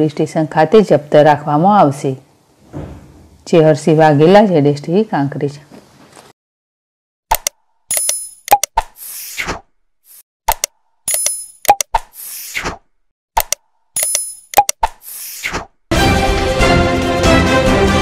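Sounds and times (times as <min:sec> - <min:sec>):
sharp mouse clicks: 0:07.3 - 0:09.4, 0:10.5 - 0:12.8, 0:13.4 - 0:15.6.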